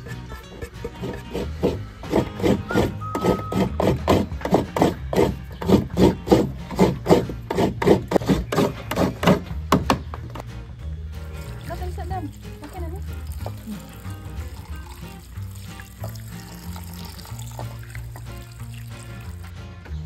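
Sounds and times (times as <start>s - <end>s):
coconut being grated by hand: 0.0s - 9.4s
background music: 0.0s - 20.0s.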